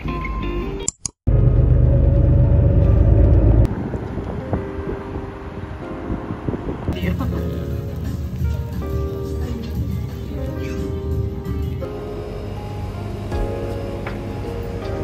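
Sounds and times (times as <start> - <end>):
loud low rumble: 1.3 - 7.6
background music: 2.4 - 15.0.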